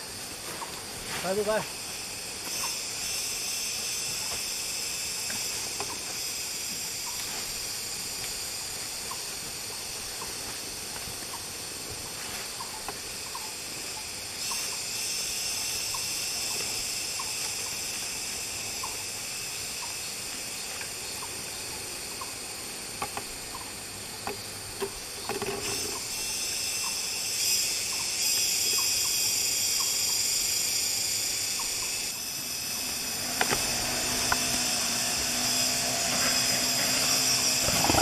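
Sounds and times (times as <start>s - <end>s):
cicadas droning: 0.0s - 38.0s.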